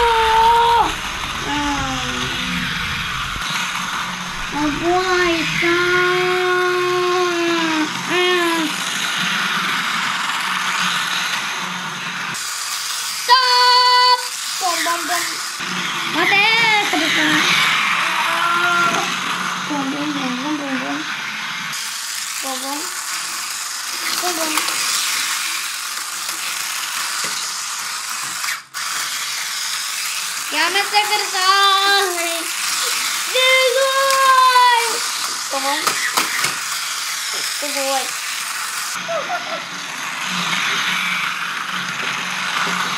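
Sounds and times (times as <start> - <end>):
child's wordless ooh sounds: 0.0 - 2.6, 18.0 - 19.1
toy train whirring and clattering: 0.0 - 42.9.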